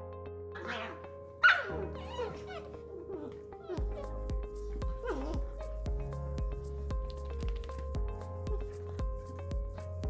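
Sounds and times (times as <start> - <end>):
background music: 0.0 - 10.0
puppy yelping: 0.6 - 5.8
puppies yipping and whining: 0.6 - 5.9.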